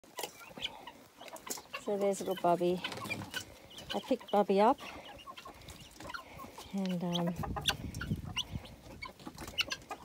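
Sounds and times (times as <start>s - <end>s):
chicks peeping: 0.0s - 10.0s
chickens clucking softly: 0.1s - 10.0s.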